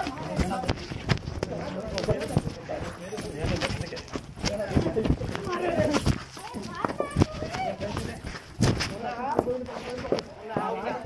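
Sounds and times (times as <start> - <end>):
thuds and knocks from grappling: 8.6 - 9.0.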